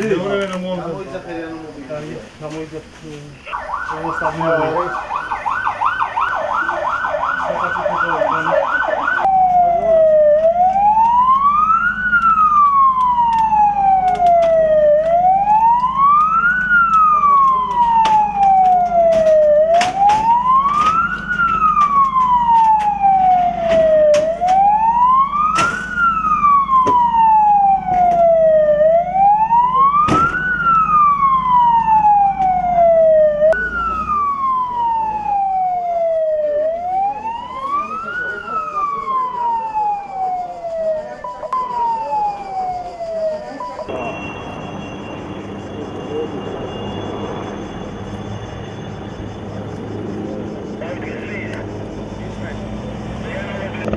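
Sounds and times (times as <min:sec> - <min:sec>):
ambulance siren: 0:03.4 - 0:53.9.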